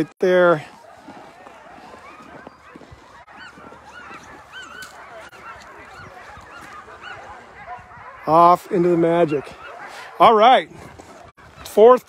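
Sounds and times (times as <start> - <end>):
sled dogs yipping and barking: 0.0 - 12.0.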